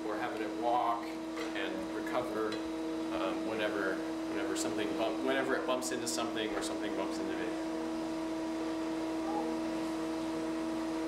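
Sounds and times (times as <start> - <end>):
robot hydraulics humming and whining: 6.7 - 11.0.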